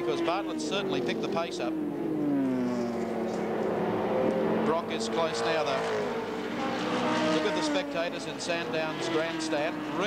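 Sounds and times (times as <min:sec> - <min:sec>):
racing car engines: 0:00.0 - 0:10.0.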